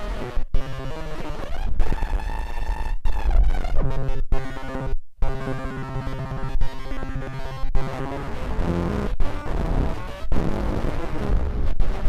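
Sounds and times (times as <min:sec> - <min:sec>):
buzzy pitch-shifted electronic noise: 0:00.0 - 0:12.0.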